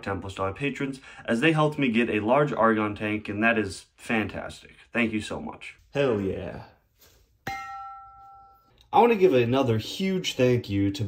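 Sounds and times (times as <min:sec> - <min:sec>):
metallic strike on gas cylinder: 0:07.4 - 0:08.8.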